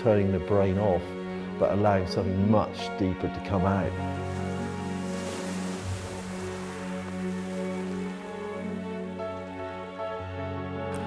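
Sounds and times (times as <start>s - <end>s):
soft ambient music: 0.0s - 11.0s
surf breaking over rocks: 3.9s - 8.9s.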